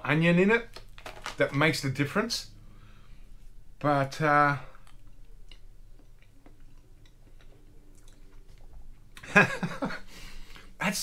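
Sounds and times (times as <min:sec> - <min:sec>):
man chewing food: 0:04.7 - 0:09.3.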